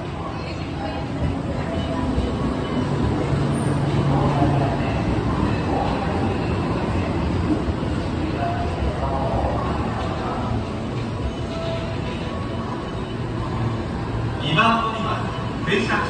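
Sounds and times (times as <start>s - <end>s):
faint voices: 0.0s - 16.0s
train rumble and hum: 0.0s - 16.0s.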